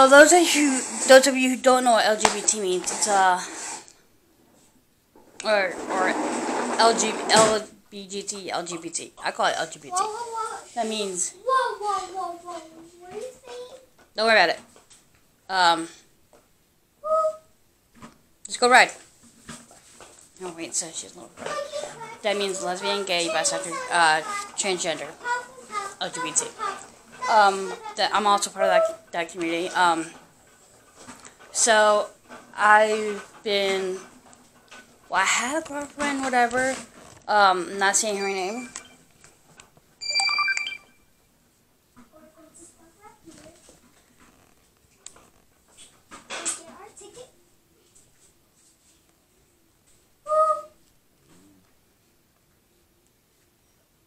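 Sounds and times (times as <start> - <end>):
held high tone: 38.0 - 39.0, 40.0 - 41.1
electronic beeping jingle: 38.1 - 39.0, 40.0 - 41.1.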